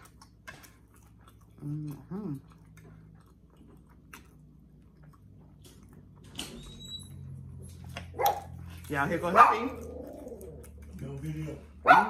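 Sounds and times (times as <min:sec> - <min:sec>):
dog whining: 0:06.4 - 0:07.5, 0:09.7 - 0:10.8
dog barking: 0:08.1 - 0:08.6, 0:09.3 - 0:09.8.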